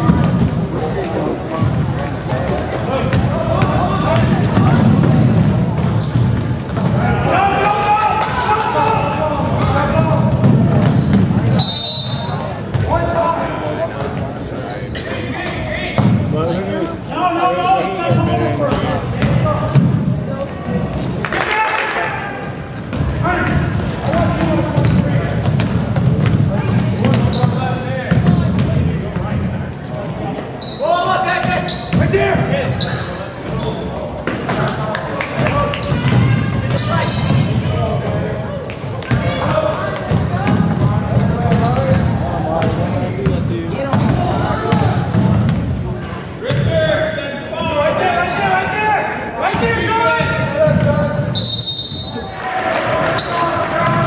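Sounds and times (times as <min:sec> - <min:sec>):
voices calling out in gym: 0:00.0 - 0:54.0
basketball bouncing on wooden floor: 0:09.4 - 0:11.6, 0:18.2 - 0:20.0, 0:22.9 - 0:28.9, 0:39.1 - 0:45.7, 0:50.2 - 0:51.2.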